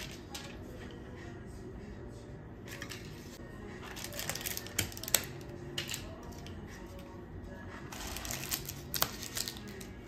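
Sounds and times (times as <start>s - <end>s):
soft background music: 0.0s - 10.0s
paper and plastic crinkling: 3.8s - 5.3s, 7.9s - 10.0s.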